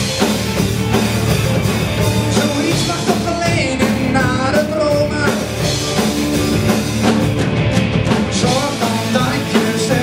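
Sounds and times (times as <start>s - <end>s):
bass guitar: 0.0s - 10.0s
drums: 0.0s - 10.0s
electric guitars: 0.0s - 10.0s
man singing: 2.2s - 5.9s, 8.2s - 10.0s.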